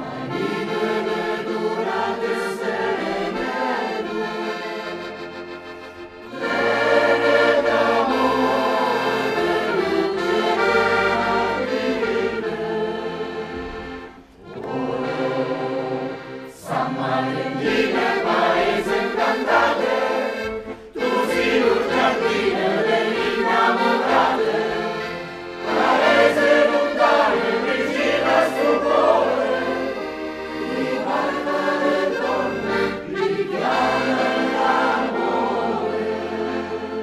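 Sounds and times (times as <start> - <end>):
choir singing: 0.0 - 37.0.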